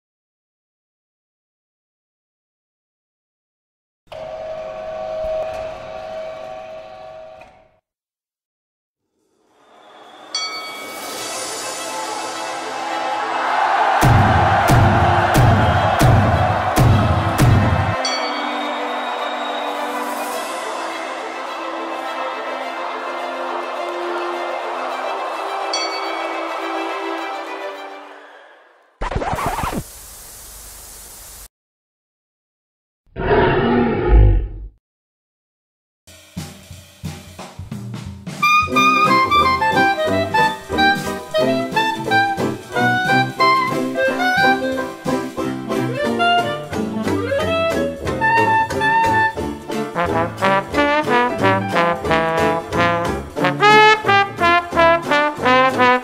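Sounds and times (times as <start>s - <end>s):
steady hiss: 29.7s - 31.5s.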